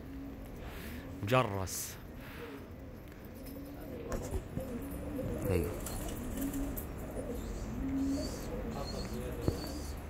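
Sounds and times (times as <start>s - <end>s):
pigeons cooing: 0.0s - 1.4s, 2.3s - 10.0s.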